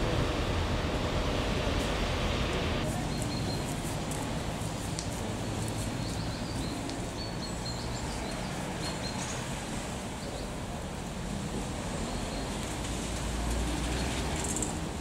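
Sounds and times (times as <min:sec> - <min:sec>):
low traffic rumble: 0:00.0 - 0:15.0
high bird chirps: 0:03.1 - 0:03.7.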